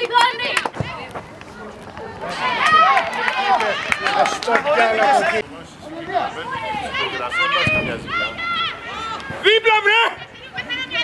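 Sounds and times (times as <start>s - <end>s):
players shouting: 0.0s - 11.0s.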